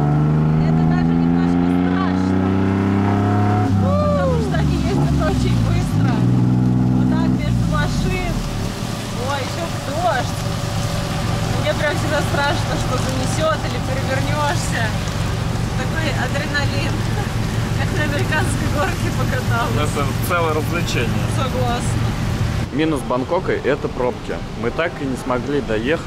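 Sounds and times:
three-wheeler engine accelerating: 0.0 - 26.0.

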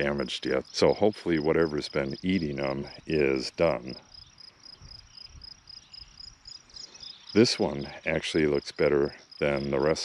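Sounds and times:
high-pitched insect chirping: 0.0 - 10.0.

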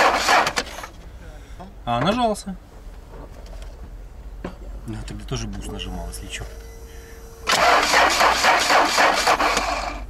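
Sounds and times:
starter motor cranking: 0.0 - 0.9, 7.4 - 10.0.

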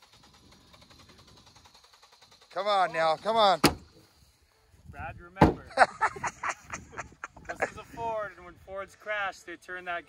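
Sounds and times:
faint rapid ticking: 0.0 - 3.6.

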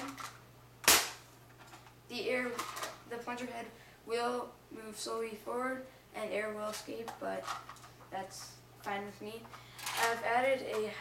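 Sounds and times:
person speaking: 0.0 - 0.3, 2.1 - 11.0.

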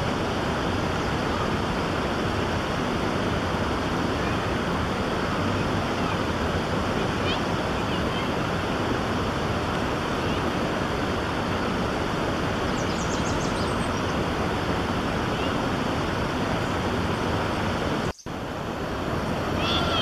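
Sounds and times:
stream water rushing: 0.0 - 20.0
faint high bird chirps: 12.7 - 14.2.

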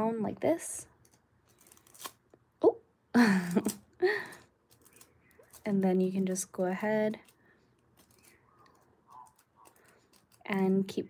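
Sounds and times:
metallic foil crinkling: 1.4 - 2.2, 3.6 - 10.7.

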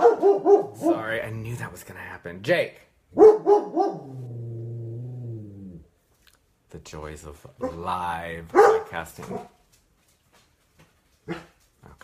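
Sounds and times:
dog barking: 0.0 - 1.2, 3.2 - 4.3, 8.5 - 9.6, 11.2 - 11.6.

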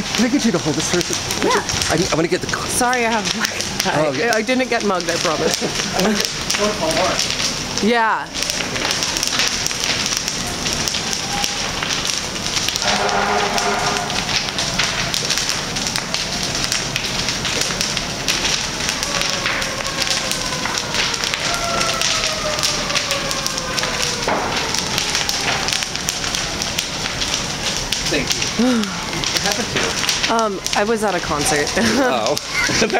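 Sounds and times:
fire crackling and snapping: 0.0 - 32.9
rushing hiss of flame: 0.0 - 32.9.

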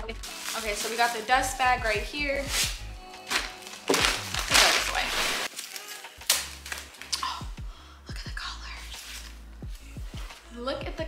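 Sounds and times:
plastic wrapping crinkling: 0.1 - 1.6, 2.3 - 7.4
cloth bag rustling: 0.2 - 1.4, 2.3 - 7.1.

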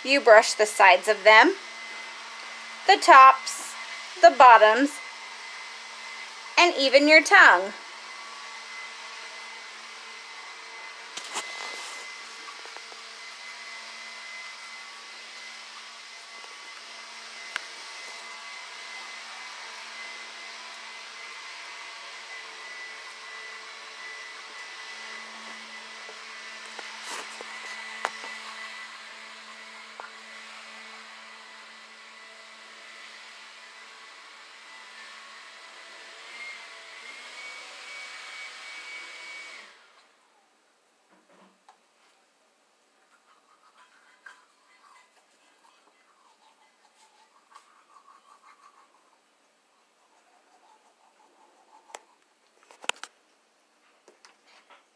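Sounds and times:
small motor whirring: 7.9 - 40.0.

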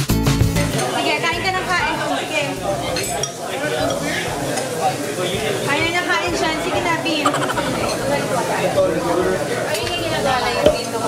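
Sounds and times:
cutlery clinking against dishes: 3.0 - 4.0
voices talking: 7.1 - 8.8.

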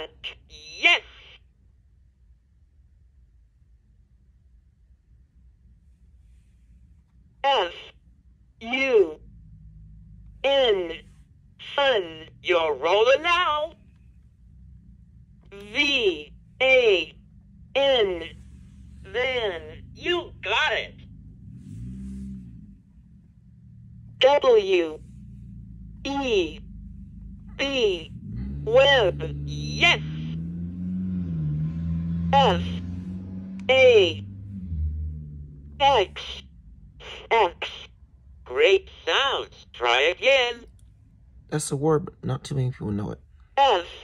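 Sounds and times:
faint low hum: 0.0 - 44.0.

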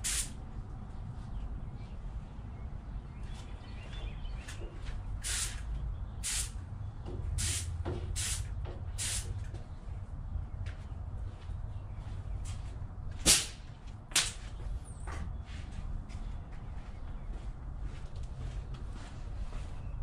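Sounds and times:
spray paint hissing bursts: 0.0 - 0.4, 5.2 - 6.6, 7.4 - 9.4.

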